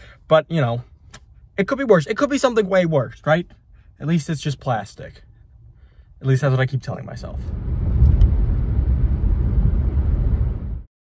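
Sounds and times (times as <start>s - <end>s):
car cabin road and engine rumble: 0.1s - 10.8s.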